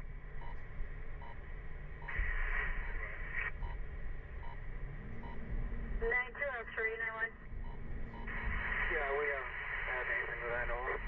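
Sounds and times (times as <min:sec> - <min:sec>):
low hum: 0:00.0 - 0:11.0
low rumble: 0:00.0 - 0:11.0
radio static hiss: 0:02.0 - 0:03.6, 0:08.0 - 0:11.0.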